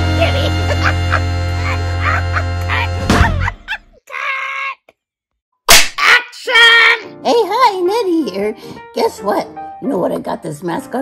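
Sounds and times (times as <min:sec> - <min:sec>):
background music: 0:00.0 - 0:03.8, 0:06.4 - 0:11.0
clapperboard snap: 0:05.7 - 0:06.0.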